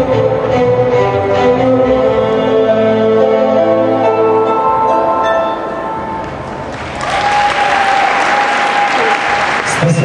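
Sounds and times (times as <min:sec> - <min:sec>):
steady high tone: 0:00.0 - 0:06.7
audience applauding: 0:06.2 - 0:10.0.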